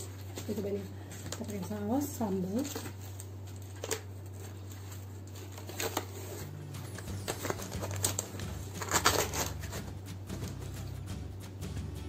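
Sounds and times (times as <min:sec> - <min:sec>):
plastic sachet crinkling: 0:00.0 - 0:10.5.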